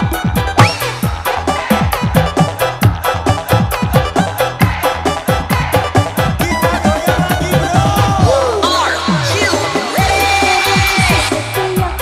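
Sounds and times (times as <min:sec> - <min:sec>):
live band music: 0:00.0 - 0:12.0
drum strokes dropping in pitch: 0:00.1 - 0:11.5
held high melody note: 0:00.4 - 0:04.3.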